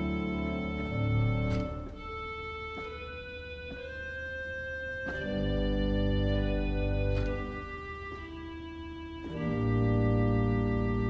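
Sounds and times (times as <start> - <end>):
pipe organ slow chords: 0.0 - 11.0.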